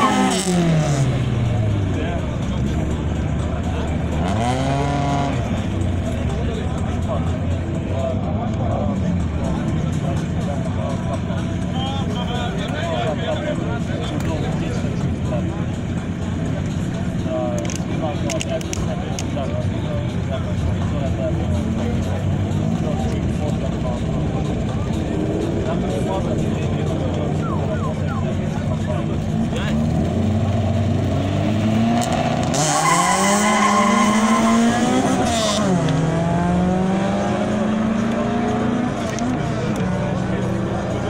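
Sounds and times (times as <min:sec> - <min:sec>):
car engines revving: 0:00.0 - 0:41.0.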